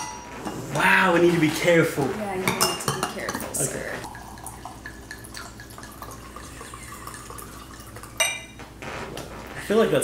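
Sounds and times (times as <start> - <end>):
glass clink: 0.0 - 0.3, 4.1 - 8.6
wine pouring into glass: 3.5 - 8.6.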